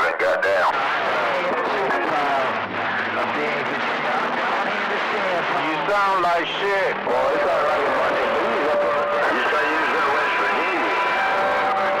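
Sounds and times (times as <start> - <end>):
distorted radio voices: 0.0 - 12.0.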